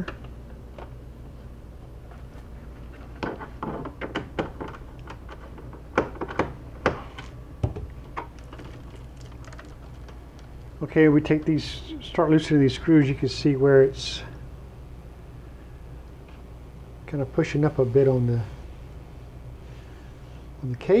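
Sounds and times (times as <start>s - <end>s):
low steady hum: 0.0s - 21.0s.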